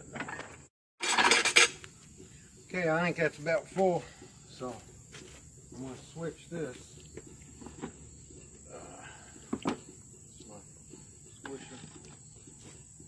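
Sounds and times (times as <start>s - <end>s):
crickets trilling: 0.0s - 13.0s.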